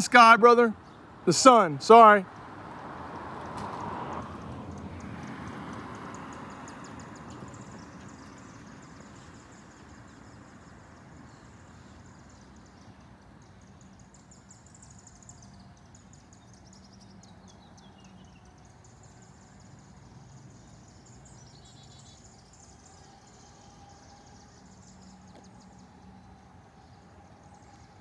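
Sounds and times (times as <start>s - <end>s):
insect chorus trilling: 4.9s - 12.7s, 18.2s - 28.0s
bird chirps: 6.1s - 28.0s.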